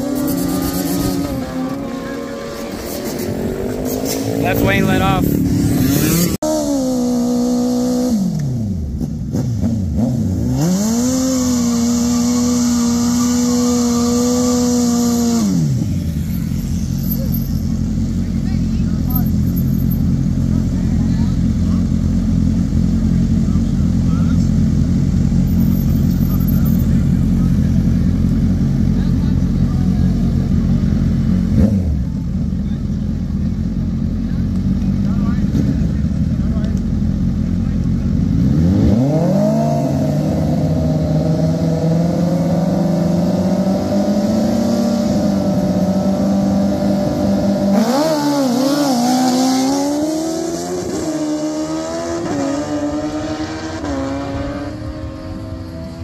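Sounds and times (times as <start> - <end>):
motorcycle engines revving: 0.0 - 56.0
motorcycles accelerating away: 0.0 - 56.0
motorcycle engines idling: 11.5 - 38.6.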